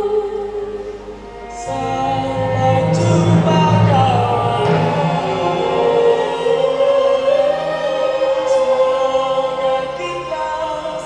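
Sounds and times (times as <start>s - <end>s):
string orchestra: 0.0s - 11.0s
group of people singing: 1.6s - 11.0s.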